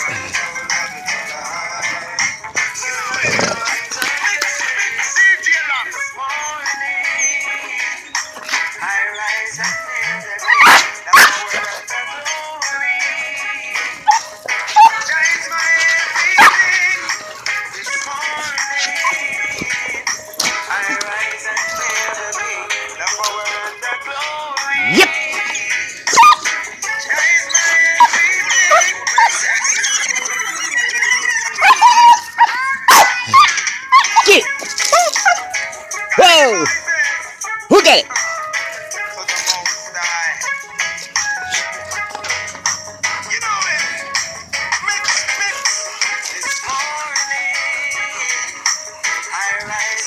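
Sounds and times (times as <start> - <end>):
background music: 0.0 - 50.0
dogs barking: 0.0 - 50.0.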